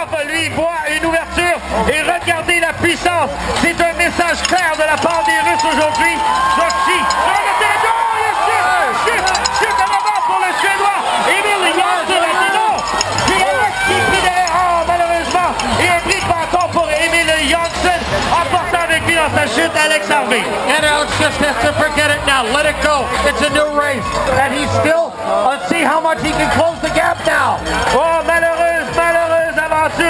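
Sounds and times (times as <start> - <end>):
crowd shouting and cheering: 0.0 - 30.0.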